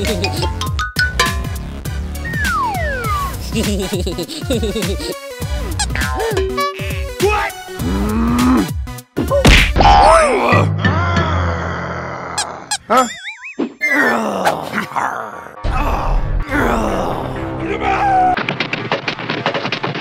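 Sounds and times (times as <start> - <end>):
background music: 0.0 - 12.9, 13.8 - 18.4
warbling rising cartoon effect: 2.2 - 3.4
cartoon character grunting: 6.0 - 13.2
sharp whack: 9.4 - 9.9.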